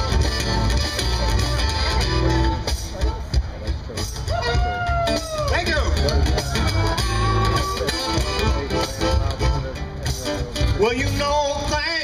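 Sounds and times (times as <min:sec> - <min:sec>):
bass: 0:00.0 - 0:12.0
drums: 0:00.0 - 0:12.0
lead guitar: 0:00.0 - 0:12.0.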